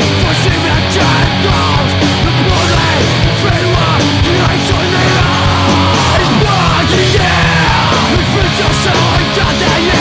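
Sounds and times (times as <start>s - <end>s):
hardcore punk band playing: 0.0s - 10.0s.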